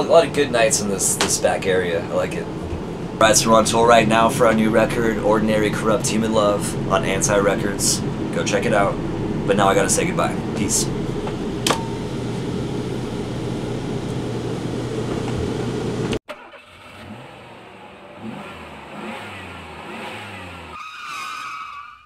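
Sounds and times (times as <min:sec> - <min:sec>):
low humming drone: 0:00.0 - 0:16.2
vehicle engine revving: 0:02.3 - 0:20.8
higher tone: 0:03.4 - 0:14.9.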